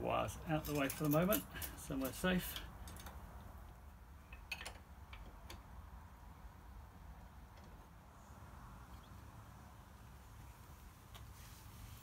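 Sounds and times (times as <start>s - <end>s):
faint clicks of parts handled: 0.6s - 5.6s.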